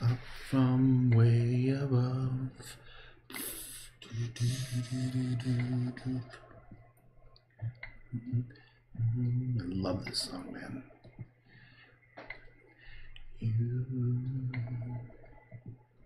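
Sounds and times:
man humming: 0:03.3 - 0:06.5, 0:08.2 - 0:10.6, 0:13.4 - 0:15.2.

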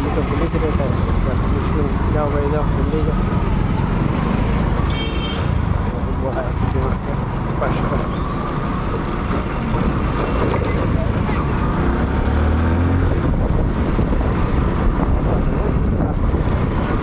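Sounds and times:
traffic engines running: 0:00.0 - 0:17.0
wind rushing over microphone: 0:08.1 - 0:17.0.

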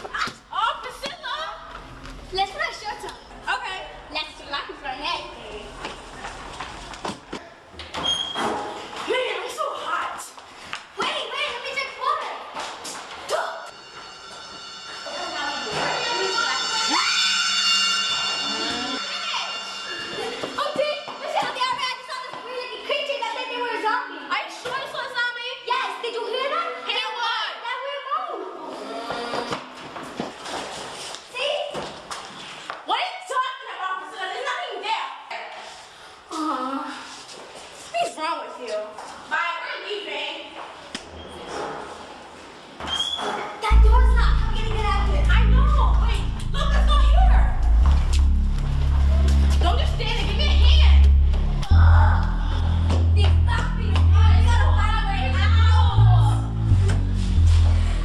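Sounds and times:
girls talking: 0:00.0 - 0:06.1, 0:09.0 - 0:13.8, 0:14.9 - 0:17.8, 0:18.9 - 0:28.9, 0:32.8 - 0:40.6, 0:43.6 - 0:47.9, 0:49.0 - 0:58.0.

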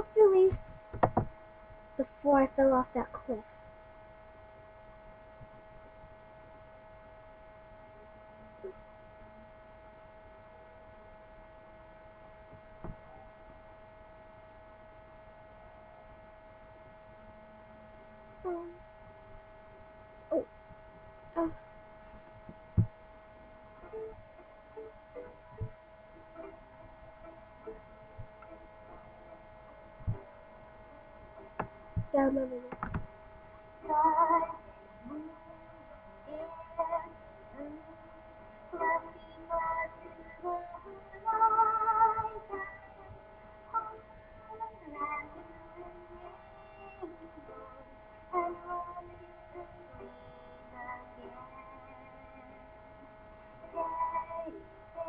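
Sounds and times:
electrical hum with whine: 0:00.0 - 0:55.0.

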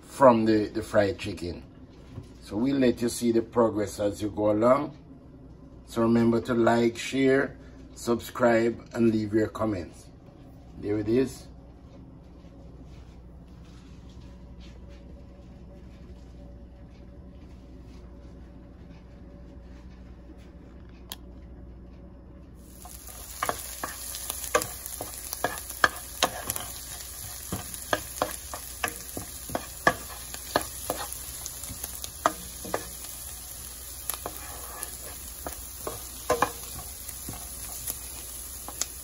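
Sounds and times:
onions sizzling in oil: 0:22.6 - 0:39.0
wooden spoon knocking and scraping pan: 0:22.7 - 0:39.0.

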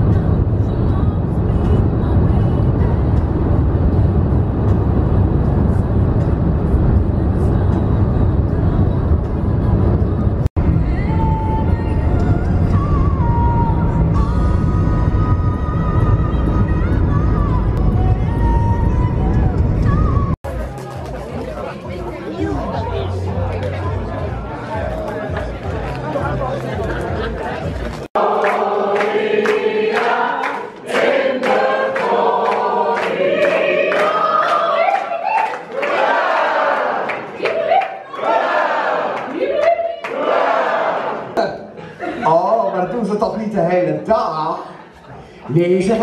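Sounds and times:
people chattering: 0:20.5 - 0:28.1.

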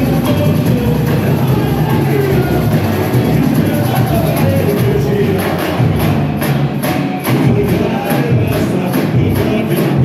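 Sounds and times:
dense low samba drumming: 0:00.0 - 0:10.0.

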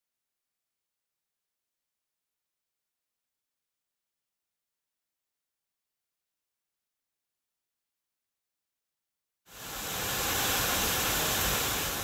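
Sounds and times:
waterfall rushing: 0:09.5 - 0:12.0.

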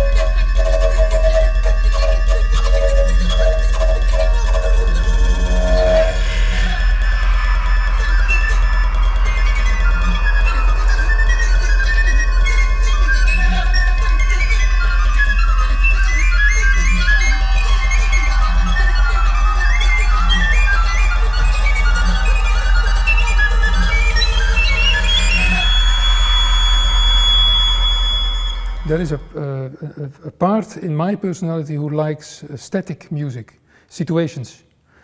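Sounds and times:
rapid high recorder runs: 0:00.0 - 0:29.4
bass recorder pulsing notes: 0:00.0 - 0:30.0
steady low drone: 0:00.0 - 0:30.2.

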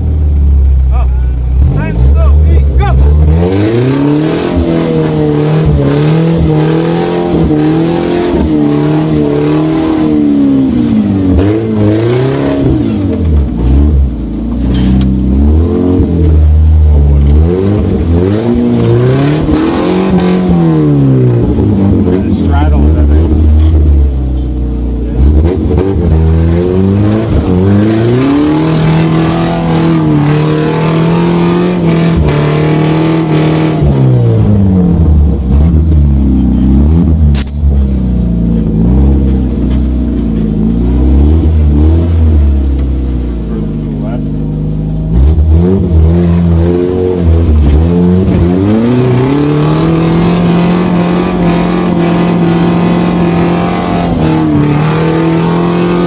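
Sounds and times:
off-road vehicle engine revving: 0:00.0 - 0:56.0.

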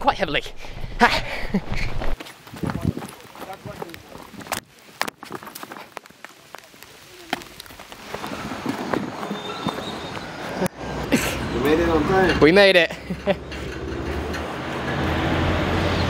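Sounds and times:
footsteps walking: 0:02.0 - 0:10.6
rain hissing: 0:02.3 - 0:11.6.

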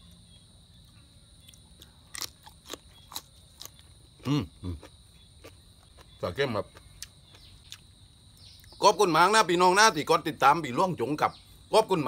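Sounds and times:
high insect drone: 0:00.0 - 0:12.0
sharp crunches: 0:01.4 - 0:07.8
person chewing food: 0:01.4 - 0:08.7.

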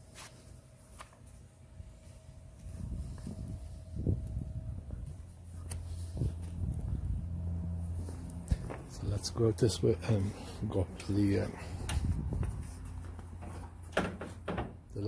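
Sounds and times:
low steady hum: 0:00.0 - 0:15.0
footsteps and handling knocks: 0:08.0 - 0:09.3, 0:10.1 - 0:14.9.

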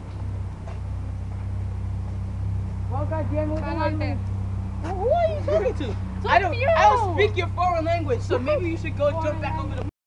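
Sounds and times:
low rumble or hum: 0:00.0 - 0:09.9.

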